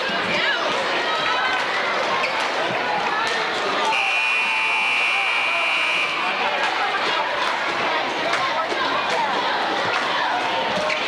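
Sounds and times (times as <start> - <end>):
crowd chatter and shouting: 0.0 - 11.0
scoreboard buzzer: 3.9 - 6.4.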